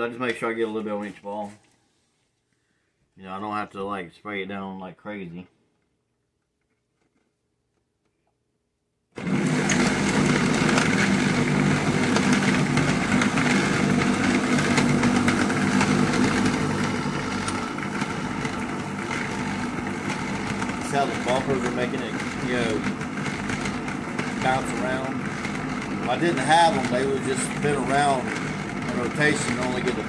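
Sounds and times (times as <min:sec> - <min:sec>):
electric motor running: 0:09.2 - 0:30.0.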